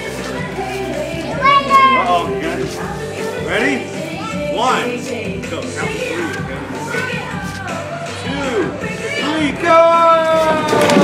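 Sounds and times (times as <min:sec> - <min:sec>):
music with singing: 0:00.0 - 0:11.0.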